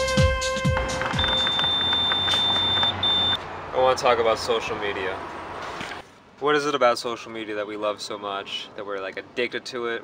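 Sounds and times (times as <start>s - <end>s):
background music: 0.0s - 2.0s
street noise: 0.5s - 10.0s
gas pump electronic beeps: 0.9s - 3.4s.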